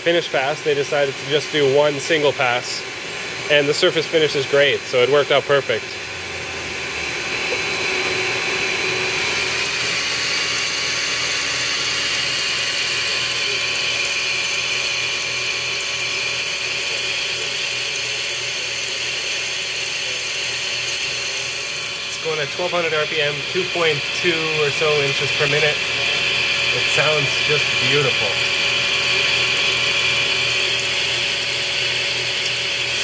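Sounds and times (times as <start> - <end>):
milling machine cutting metal: 0.0 - 33.0.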